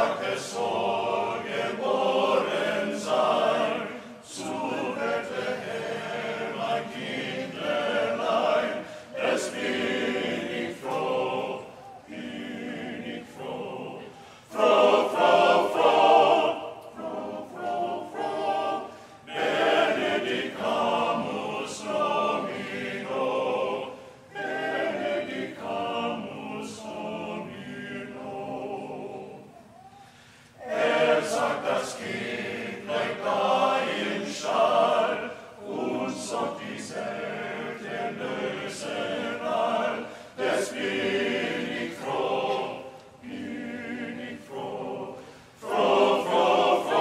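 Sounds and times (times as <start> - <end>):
choir singing a cappella: 0.0 - 47.0.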